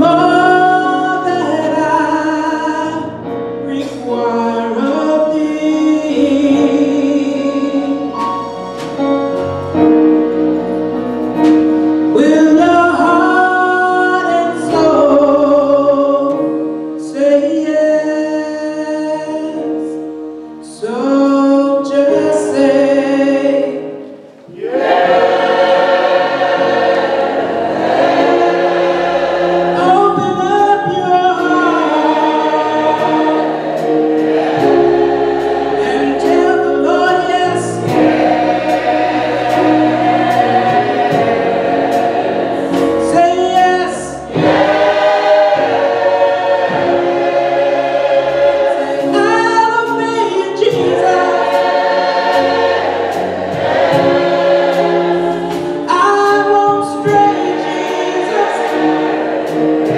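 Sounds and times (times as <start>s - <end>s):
church choir singing: 0.0s - 59.9s.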